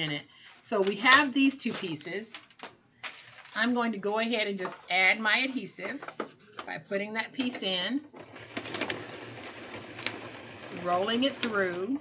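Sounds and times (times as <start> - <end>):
paper rolling through rollers: 7.4 - 12.0.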